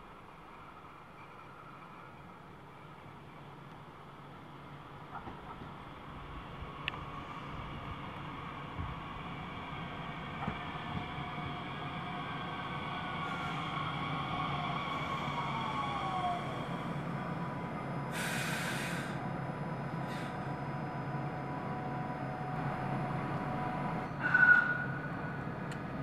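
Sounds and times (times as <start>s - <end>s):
electric train braking to a stop: 6.4s - 26.0s
air hiss: 18.1s - 19.2s.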